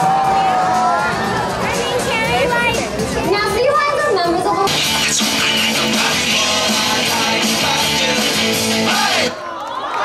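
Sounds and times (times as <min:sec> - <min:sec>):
children talking and calling out: 0:00.5 - 0:04.8.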